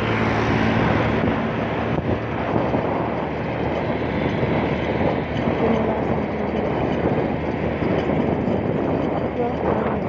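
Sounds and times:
motorcycle running: 0.0 - 10.0
wind on microphone: 0.0 - 10.0.

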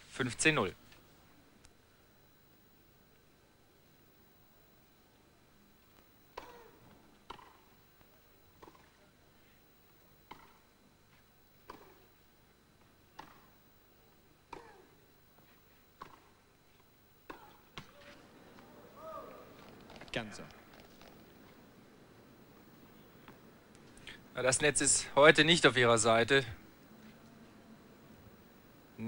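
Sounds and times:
tennis racket hitting ball: 6.3 - 7.7, 10.3 - 10.6, 13.2 - 13.5, 14.5 - 14.8.

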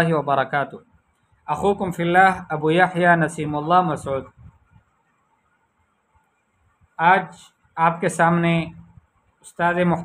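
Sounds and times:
high-pitched recording hiss: 0.0 - 10.0.

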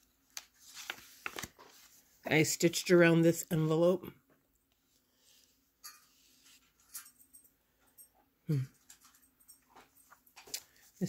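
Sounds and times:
paper pages handled: 0.1 - 2.3
woman humming hmm: 8.5 - 8.8.

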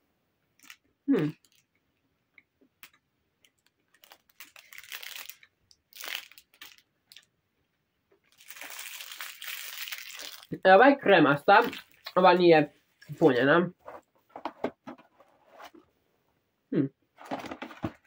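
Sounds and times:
person humming mm: 1.1 - 1.4, 16.7 - 16.9
chocolate crunching while chewed: 8.3 - 10.5.

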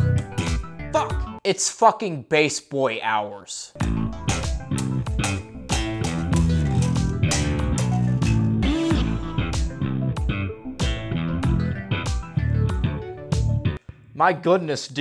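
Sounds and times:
electric bass line: 0.0 - 1.3, 3.8 - 13.8
drum beat: 3.8 - 9.7
synthwave music: 3.8 - 13.8.

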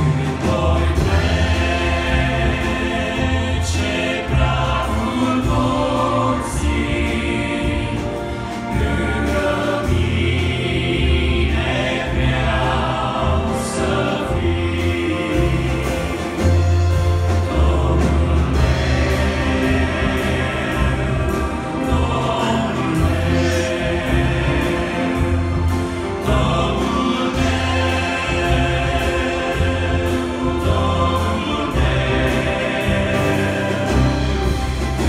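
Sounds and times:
bass guitar: 0.0 - 35.0
keyboards: 0.0 - 35.0
male group singing a hymn: 0.0 - 35.0.

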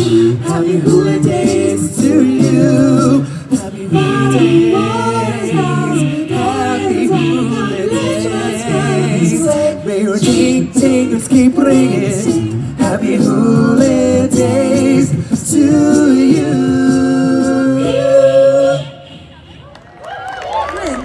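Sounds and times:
men singing a cappella: 0.0 - 19.0.

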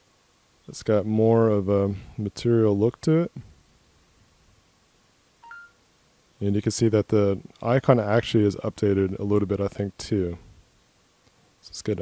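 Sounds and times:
two-note rising electronic beep: 5.4 - 5.8.

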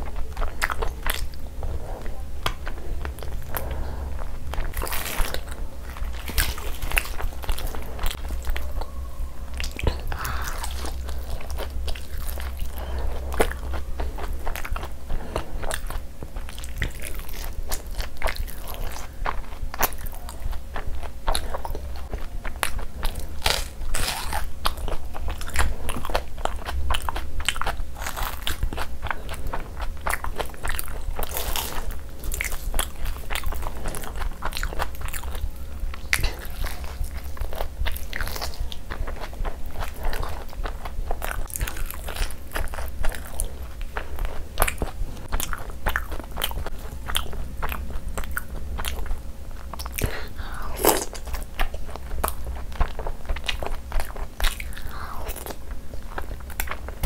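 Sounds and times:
person chewing food: 0.0 - 57.0
steady low hum: 0.0 - 57.0.

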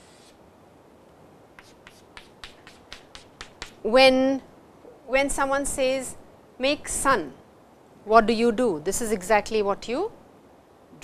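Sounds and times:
chalk tapping on chalkboard: 1.6 - 3.8
woman speaking: 3.8 - 7.4, 8.1 - 10.2.

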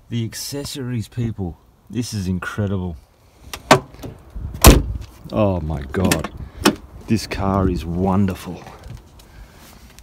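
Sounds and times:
car door closing thud: 3.6 - 5.0.

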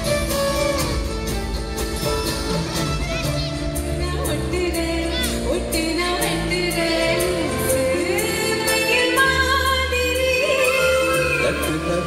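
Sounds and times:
live band playing: 0.0 - 12.0
person singing: 10.0 - 12.0.

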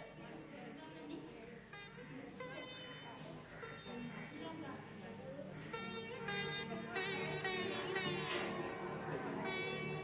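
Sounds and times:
sitar music with bent notes: 1.2 - 10.0.

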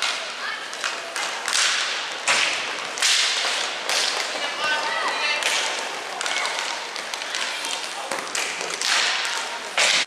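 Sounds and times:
hockey sticks slapping and scraping: 0.0 - 10.0.

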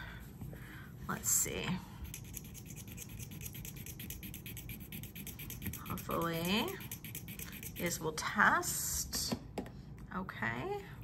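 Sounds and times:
earring scratching on stone: 2.0 - 8.1.

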